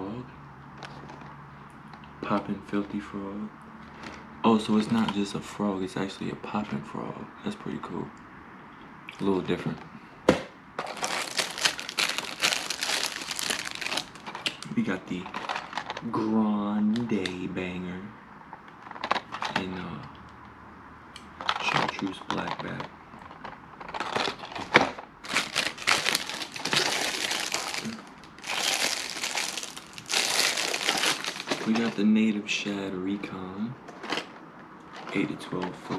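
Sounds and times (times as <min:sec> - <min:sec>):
plastic packaging crinkling: 0:10.8 - 0:16.1, 0:23.8 - 0:32.0.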